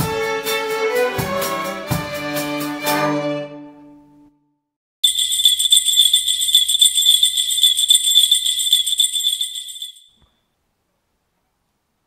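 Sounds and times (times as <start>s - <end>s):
jingle bells shaking: 5.0s - 10.2s.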